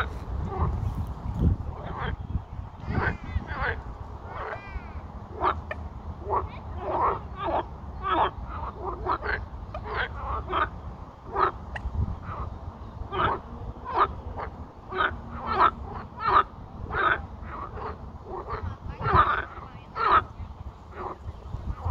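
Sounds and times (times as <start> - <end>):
frogs croaking in chorus: 1.6 - 21.9.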